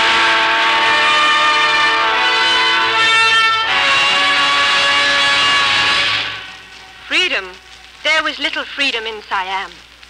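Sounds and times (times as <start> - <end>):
full orchestra chord: 0.0 - 6.6
brass phrase: 0.0 - 7.2.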